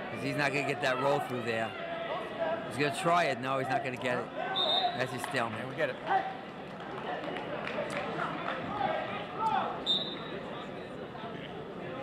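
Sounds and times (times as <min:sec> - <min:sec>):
murmur of crowd voices: 0:00.0 - 0:12.0
referee's whistle blast: 0:04.6 - 0:05.1, 0:09.9 - 0:10.4.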